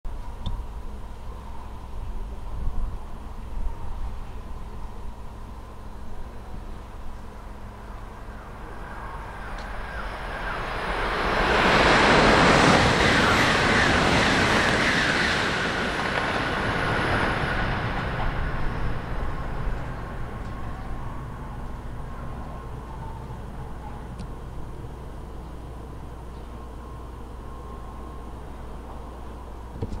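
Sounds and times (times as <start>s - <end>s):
train passing at speed: 0.6s - 29.8s.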